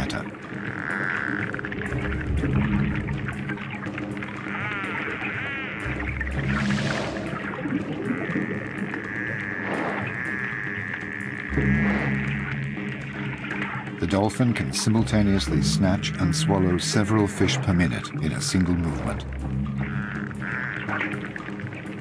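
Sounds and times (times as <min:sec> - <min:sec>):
background music with low notes: 0:00.0 - 0:22.0.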